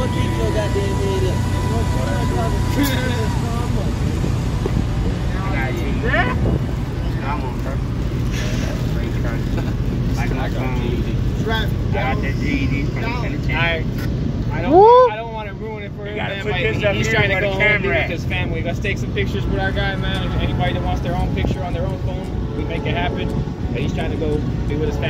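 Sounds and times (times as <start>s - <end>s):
steady low rumble: 0.0s - 16.2s, 18.2s - 25.0s
people talking and laughing: 0.0s - 25.0s
loud rising and falling shout: 14.6s - 15.2s.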